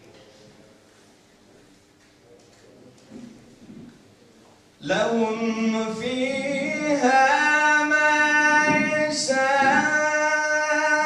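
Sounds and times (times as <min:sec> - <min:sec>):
man singing into a microphone: 0:04.8 - 0:11.0.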